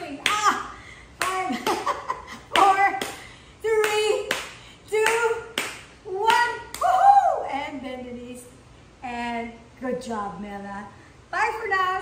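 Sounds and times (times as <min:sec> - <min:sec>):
hands clapping in a steady beat: 0:03.8 - 0:06.8.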